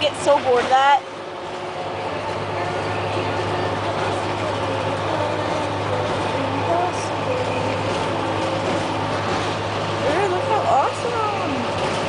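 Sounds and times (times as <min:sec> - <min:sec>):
bus engine drone: 0:00.0 - 0:12.0
road rumble: 0:00.0 - 0:12.0.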